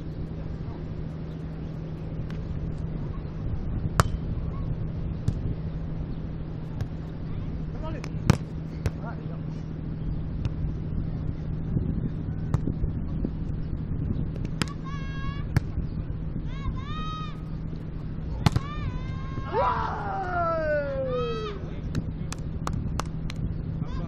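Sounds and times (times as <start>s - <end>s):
low background hum: 0.0s - 24.0s
hands slapping volleyball: 18.4s - 18.7s, 21.9s - 23.4s
player shouting: 18.6s - 21.7s.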